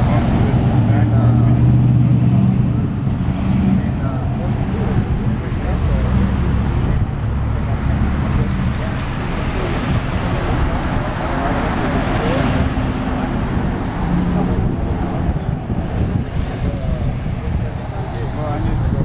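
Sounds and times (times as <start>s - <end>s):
tyre noise on road: 0.0s - 19.0s
vehicles driving past: 0.0s - 19.0s.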